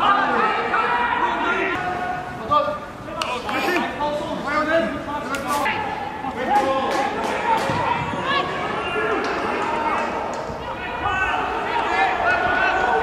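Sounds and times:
footballers shouting: 0.0 - 13.0.

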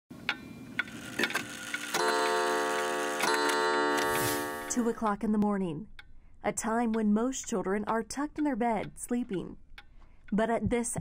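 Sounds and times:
wall clock ticking: 0.3 - 11.0
clock chime striking: 1.9 - 5.0.

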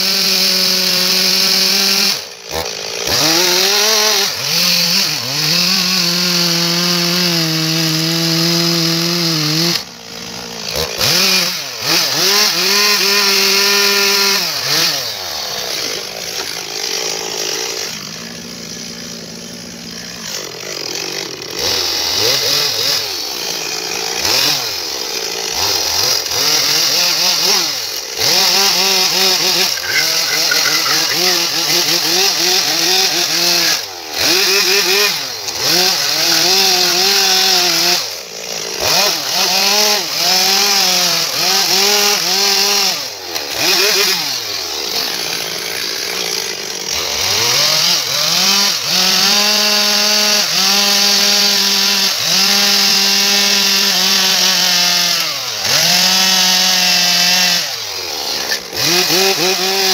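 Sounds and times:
chainsaw cutting log: 0.0 - 59.9.

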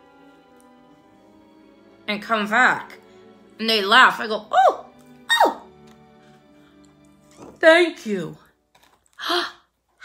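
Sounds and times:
faint background music: 0.0 - 10.0.

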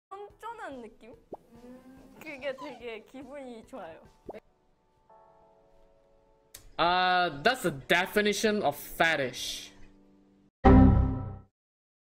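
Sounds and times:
woman speaking: 0.2 - 4.4
woman humming hmm: 1.4 - 2.2.

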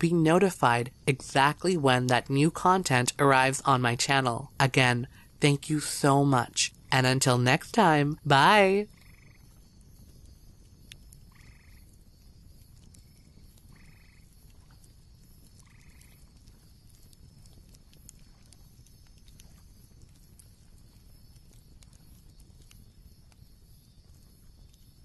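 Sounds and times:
small clicks: 10.8 - 23.5.

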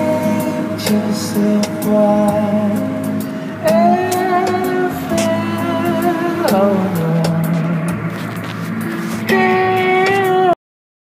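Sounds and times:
sustained low chord music: 0.0 - 10.6.

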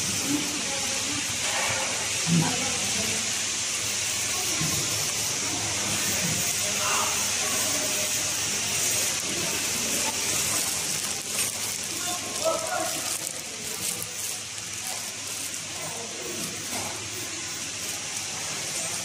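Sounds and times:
packaging machine hissing: 0.0 - 19.0
faint voices: 4.0 - 19.0
plastic pouches crinkling: 6.8 - 19.0.

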